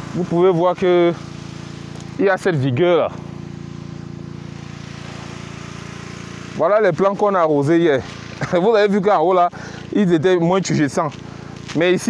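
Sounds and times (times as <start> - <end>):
motor pump engine running: 0.0 - 12.0.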